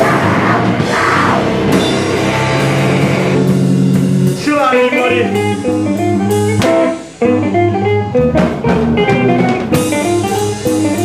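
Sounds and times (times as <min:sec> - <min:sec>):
punk band playing live: 0:00.0 - 0:11.0.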